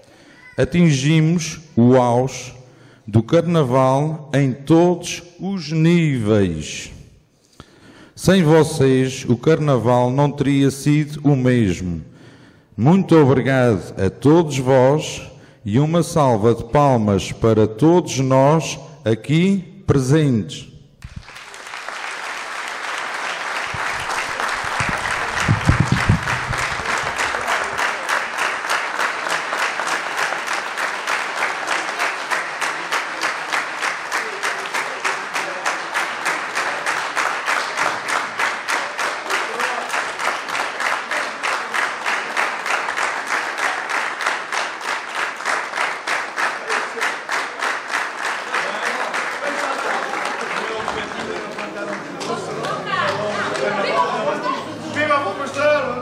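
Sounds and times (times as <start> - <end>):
crowd applauding: 21.0 - 54.6.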